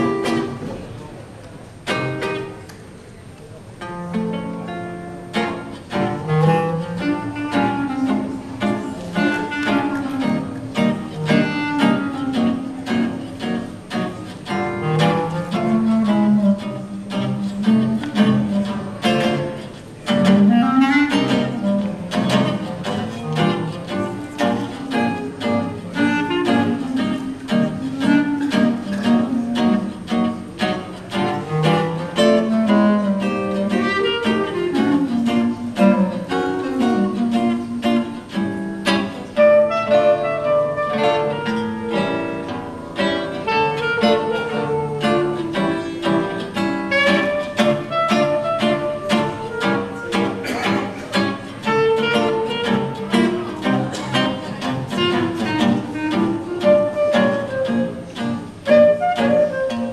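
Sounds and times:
clarinet melody: 0.0s - 1.0s, 3.8s - 59.9s
guitar chords: 0.0s - 2.9s, 3.7s - 59.9s.

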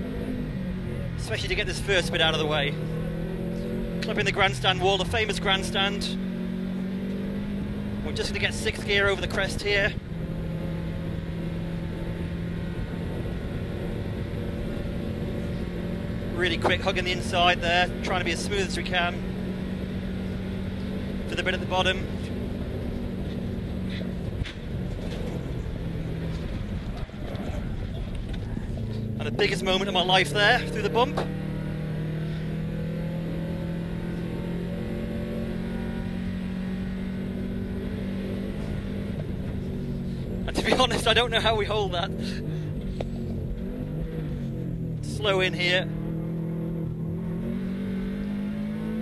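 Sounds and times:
car engine at full throttle: 0.0s - 49.0s
road and wind noise: 0.0s - 49.0s.

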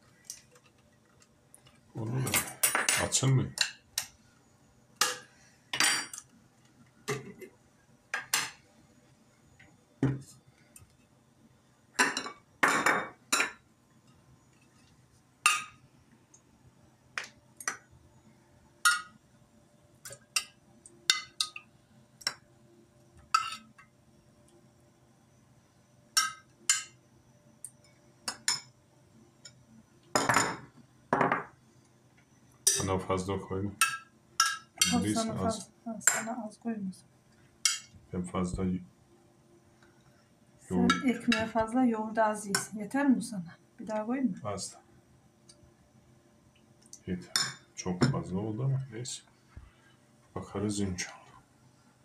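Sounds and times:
metal spoon clinking on bowls: 2.3s - 4.1s, 5.0s - 6.3s, 20.0s - 21.6s, 23.3s - 23.8s, 26.2s - 27.0s, 32.6s - 32.9s, 33.8s - 36.3s, 37.6s - 37.9s, 40.8s - 41.5s, 47.3s - 48.2s.

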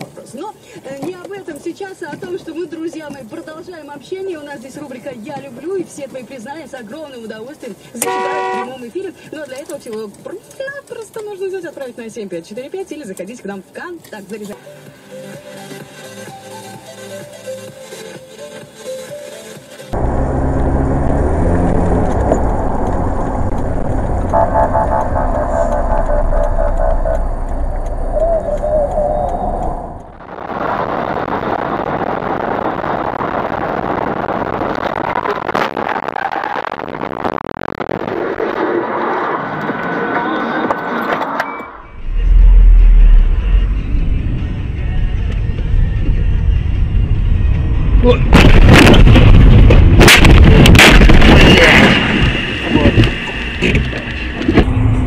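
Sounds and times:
vehicle engine and road noise: 0.0s - 55.0s
music playing: 14.6s - 20.0s, 42.1s - 48.3s.

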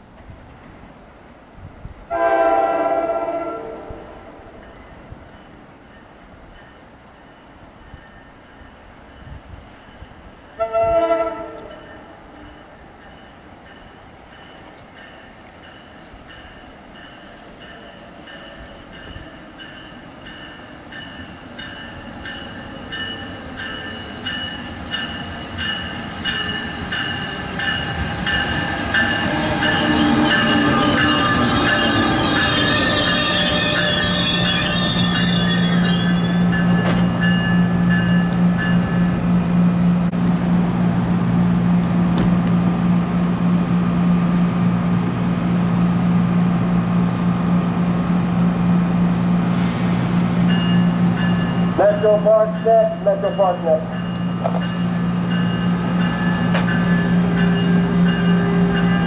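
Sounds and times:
standing train humming: 0.0s - 59.0s
train horn blast: 2.1s - 4.6s, 10.6s - 12.0s
electric train whining: 9.2s - 59.0s
brakes and wheels squealing: 21.8s - 37.6s.

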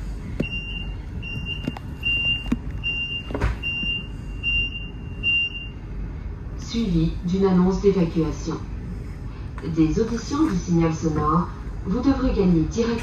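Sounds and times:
rumble of moving carriage: 0.0s - 13.0s
high-pitched alarm beeps: 0.4s - 5.8s.

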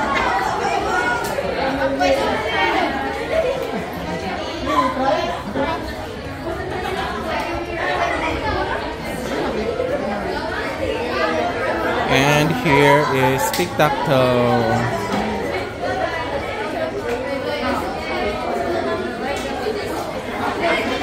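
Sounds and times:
students chattering: 11.4s - 21.0s.

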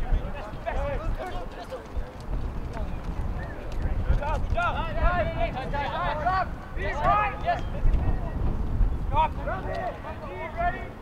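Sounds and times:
wind rumble on microphone: 0.0s - 11.0s
players shouting: 4.2s - 8.4s.

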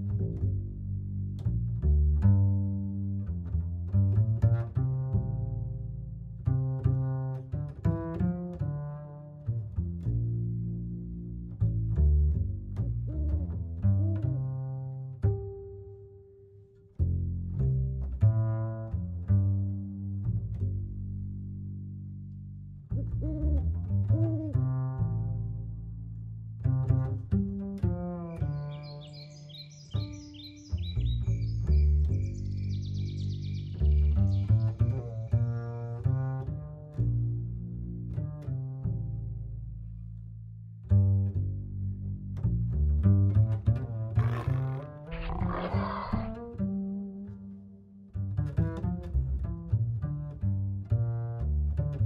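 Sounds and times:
background music with low string note: 0.0s - 45.1s, 46.4s - 52.0s
big cat roaring: 44.2s - 46.5s
owl hooting: 45.2s - 46.4s.

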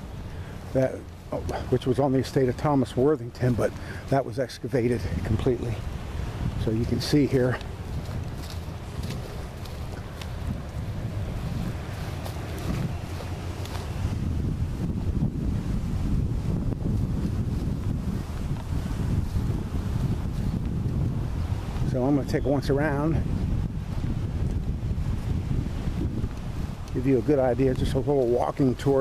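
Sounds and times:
wind rumbling on microphone: 0.0s - 29.0s.

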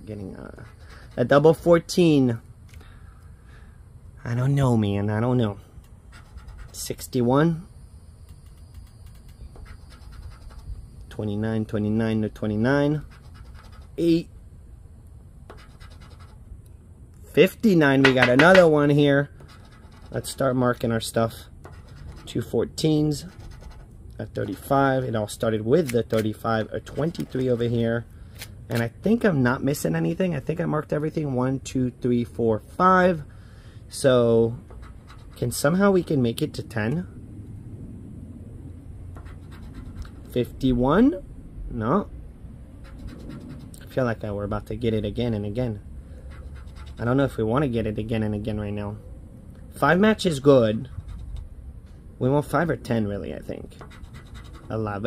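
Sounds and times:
low steady rumbling: 0.0s - 55.0s
chip scratching lottery ticket: 0.4s - 1.7s, 6.0s - 7.3s, 8.2s - 10.8s, 12.7s - 14.3s, 15.5s - 16.4s, 18.0s - 28.0s, 34.5s - 36.2s, 39.2s - 40.5s, 42.8s - 43.9s, 46.2s - 47.4s, 50.6s - 51.4s, 53.7s - 55.0s.

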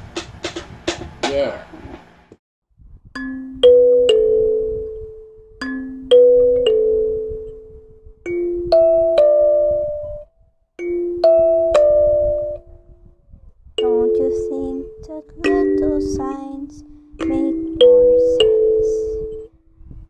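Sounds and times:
plucked instrument ringing notes: 3.2s - 12.8s, 13.8s - 19.5s.

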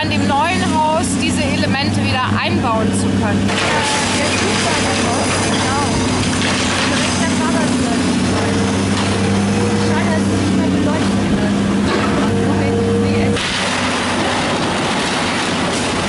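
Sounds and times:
excavator engine drone: 0.0s - 16.0s
crunching falling debris: 3.5s - 7.5s, 13.4s - 16.0s.

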